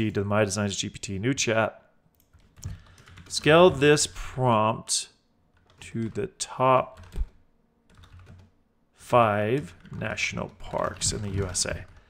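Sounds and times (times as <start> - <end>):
keyboard typing: 2.2 - 4.0, 5.5 - 6.3, 6.9 - 8.5, 9.4 - 12.0.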